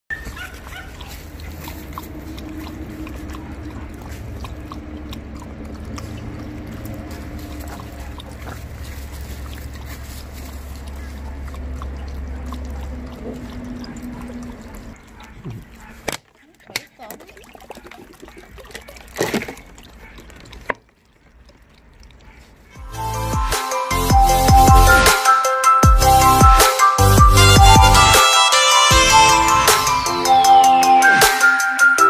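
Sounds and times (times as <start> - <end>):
dogs lapping water: 0.1 - 23.4
low steady rumble: 0.8 - 15.8.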